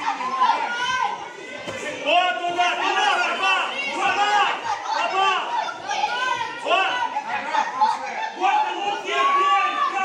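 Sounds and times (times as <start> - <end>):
children shouting in a gym hall: 0.0 - 10.0.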